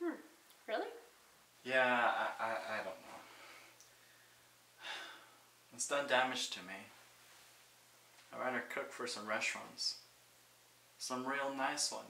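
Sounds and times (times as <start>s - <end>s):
man speaking: 1.6s - 3.3s, 5.7s - 6.9s, 8.3s - 10.1s, 11.0s - 12.0s
man breathing: 3.1s - 5.5s.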